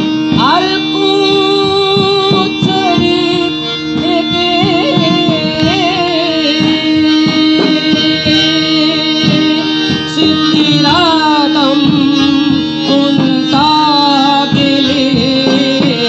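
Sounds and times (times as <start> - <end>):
gliding singing voice: 0.0 - 16.0
harmonium drone and melody: 0.0 - 16.0.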